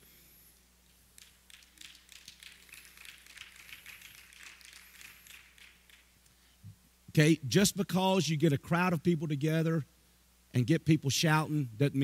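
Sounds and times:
scattered applause: 1.2 - 6.1.

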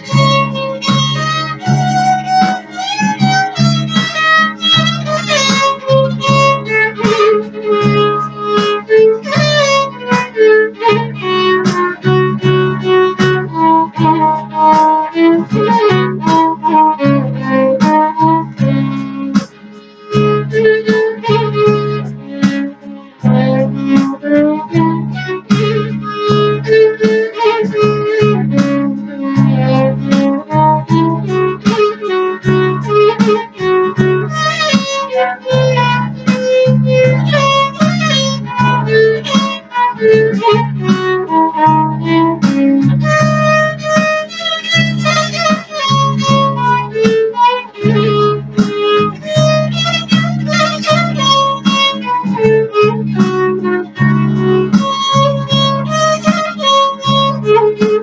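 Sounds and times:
backing accompaniment with beat: 0.0 - 58.0
violin melody: 0.0 - 58.0.

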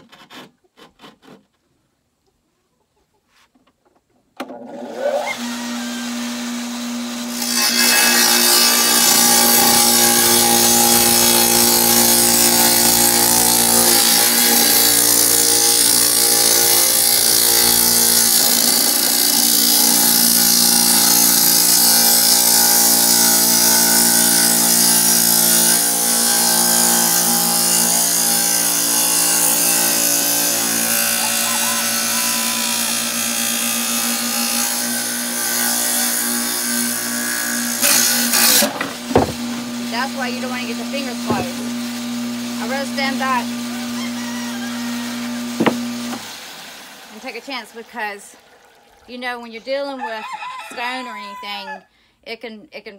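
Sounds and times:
tile saw cutting brick: 0.0 - 1.5, 4.5 - 48.3.

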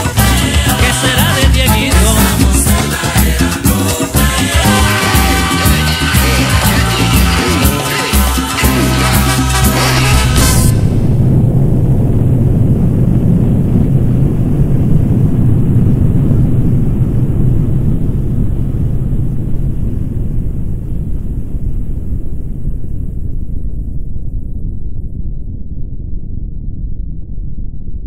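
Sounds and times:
deep explosion rumble: 0.0 - 28.0.

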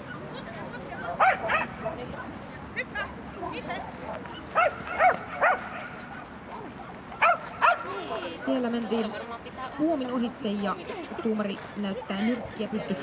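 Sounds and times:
dog yipping: 1.2 - 1.8, 4.5 - 5.9, 7.2 - 7.9.

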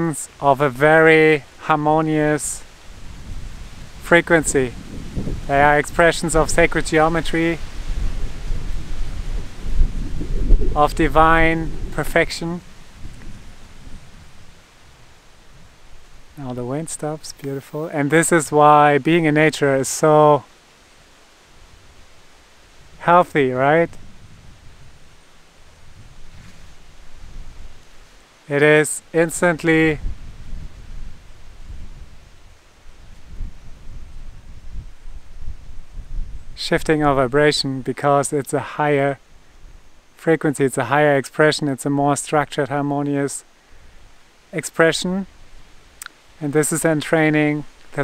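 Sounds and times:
wind blowing on microphone: 0.0 - 19.7, 22.7 - 38.0.

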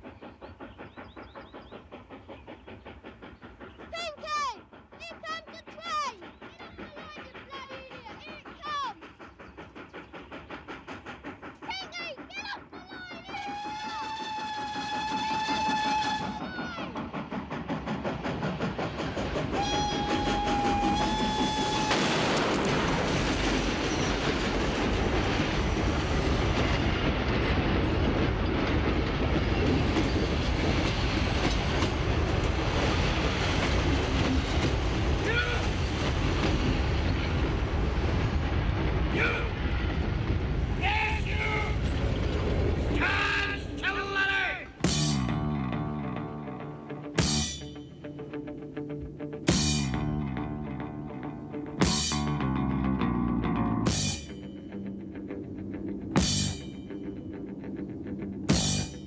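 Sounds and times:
steam locomotive chuffing: 0.0 - 59.0
train running on rails: 0.0 - 59.0.

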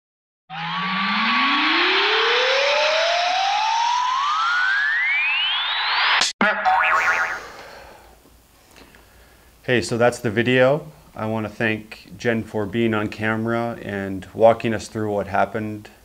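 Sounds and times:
rising electronic whoosh: 0.5 - 7.8.

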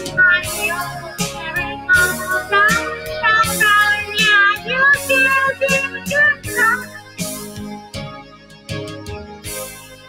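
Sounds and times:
woman singing: 0.0 - 6.9.

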